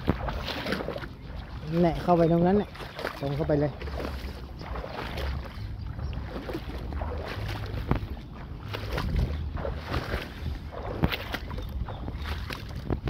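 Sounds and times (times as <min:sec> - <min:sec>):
wading splashes in water: 0:00.0 - 0:13.0
wind rumble on microphone: 0:00.0 - 0:13.0.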